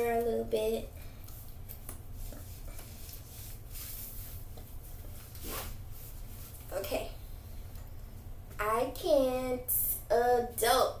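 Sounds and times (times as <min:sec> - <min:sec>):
steady low hum: 0:00.0 - 0:11.0
fabric rustling: 0:01.4 - 0:06.8.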